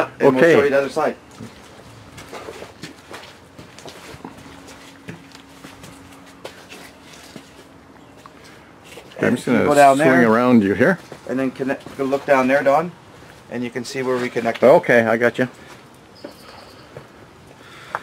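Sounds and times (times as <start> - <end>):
faint steady hum: 0.0 - 18.0
footsteps on dirt and grass: 1.3 - 7.8.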